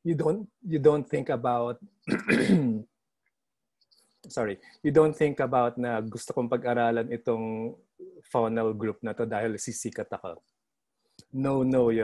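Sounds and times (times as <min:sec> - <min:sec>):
man coughing: 0:02.1 - 0:02.8.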